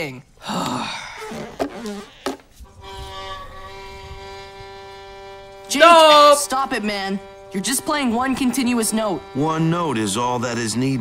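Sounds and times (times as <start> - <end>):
violin holding one note: 2.8 - 10.6.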